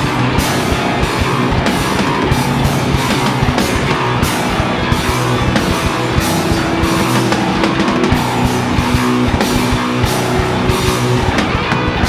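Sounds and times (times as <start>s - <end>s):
electric guitars: 0.0s - 12.0s.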